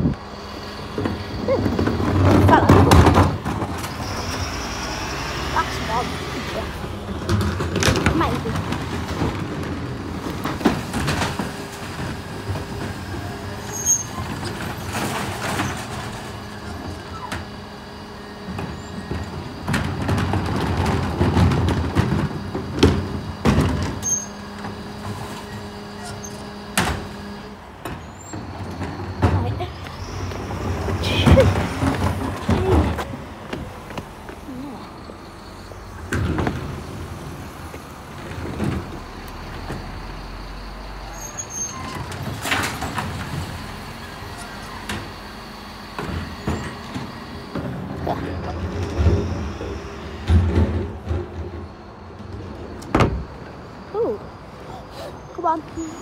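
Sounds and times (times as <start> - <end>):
bin lorry running: 0.0 - 56.0
steady mechanical hum: 0.0 - 56.0
plastic bins knocking and banging: 0.9 - 4.3, 6.9 - 17.6, 18.4 - 25.4, 27.9 - 34.4, 36.0 - 37.2, 46.0 - 53.4.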